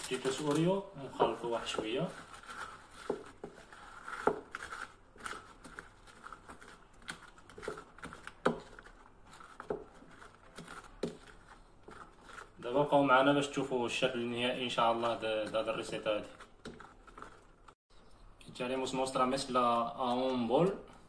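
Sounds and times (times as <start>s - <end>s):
spoon scraping cream mixture: 0.0s - 17.8s.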